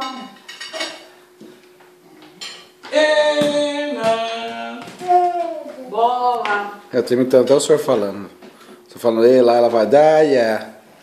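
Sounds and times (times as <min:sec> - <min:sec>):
tableware clinking: 0:00.0 - 0:01.1, 0:02.4 - 0:02.8
person calling out: 0:02.8 - 0:06.8.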